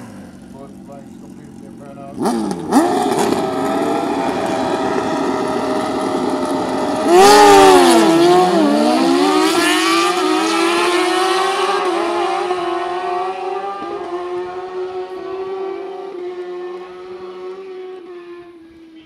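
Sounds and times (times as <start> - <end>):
motorcycles revving and accelerating: 0.0 - 19.0.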